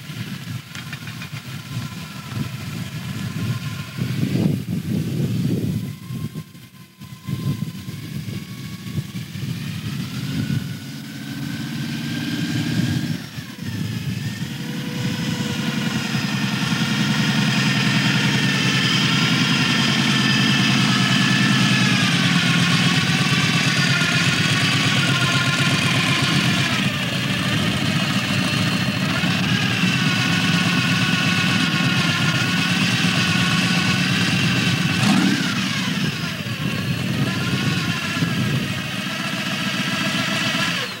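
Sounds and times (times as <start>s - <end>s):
car engine idling with throttle blips: 0.0s - 41.0s.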